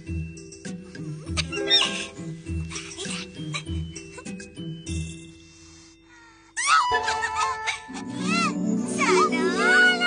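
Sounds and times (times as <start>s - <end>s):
bouncy cartoon music: 0.0s - 5.4s, 6.6s - 10.0s.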